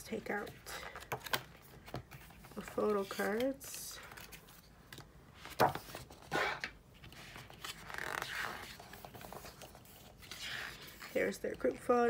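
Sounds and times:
paper pages rustling: 0.4 - 11.4
paper scraping rustle: 7.0 - 11.4.

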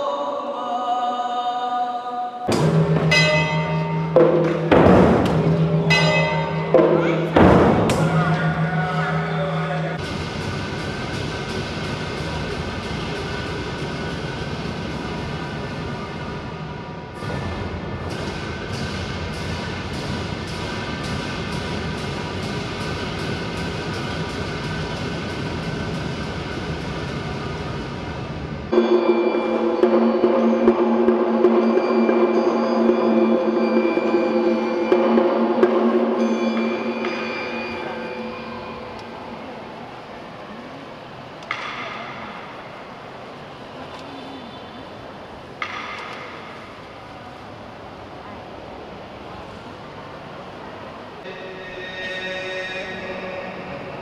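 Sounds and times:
gong ringing: 2.5 - 16.1, 28.7 - 39.6
ceremonial drum struck: 2.5 - 16.3.

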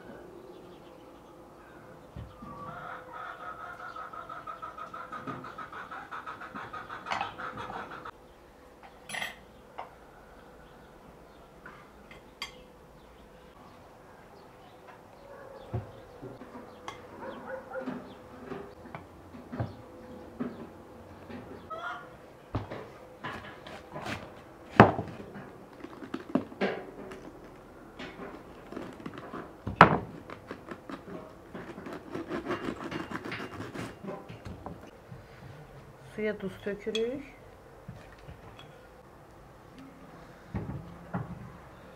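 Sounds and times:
knife cutting cabbage on board: 23.3 - 25.2, 28.3 - 34.3.

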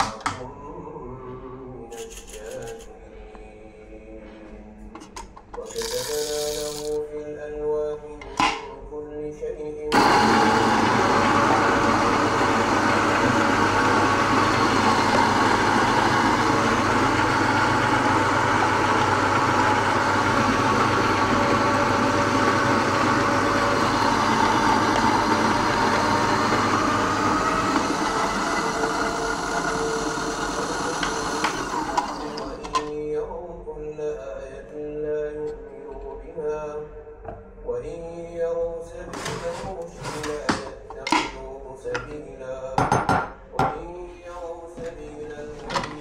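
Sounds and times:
coffee grinder grinding beans: 5.6 - 7.0, 10.0 - 32.7.

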